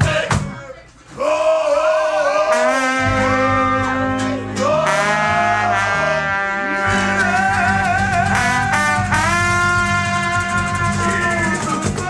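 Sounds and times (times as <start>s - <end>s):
brass horn long note: 2.5s - 10.9s
guitar accompaniment: 3.0s - 12.0s.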